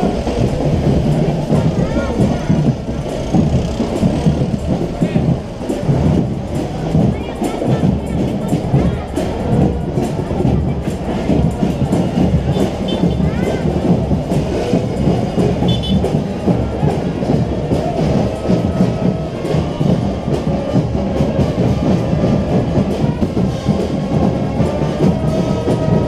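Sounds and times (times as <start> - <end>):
crowd voices: 0.0 - 26.0
marching band drums: 0.0 - 26.0.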